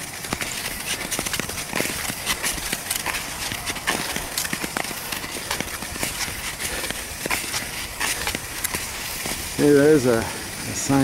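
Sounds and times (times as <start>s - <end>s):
skate stride clicks and knocks: 0.0s - 10.2s
skate blades gliding on ice: 0.0s - 11.0s.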